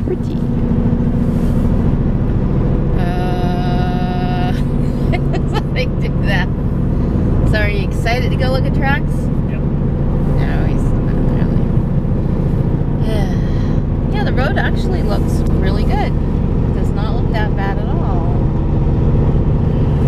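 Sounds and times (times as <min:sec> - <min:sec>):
car engine and road drone: 0:00.0 - 0:20.0.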